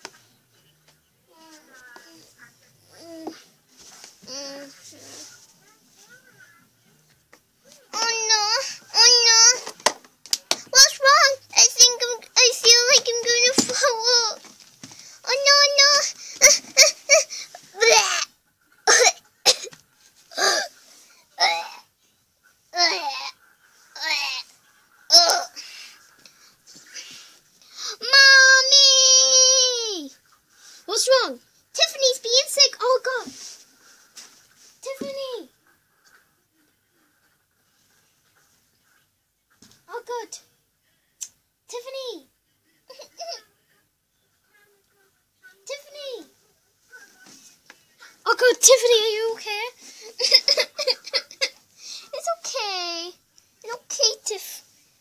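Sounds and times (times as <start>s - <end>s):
girl coughing: 18.9s - 20.7s.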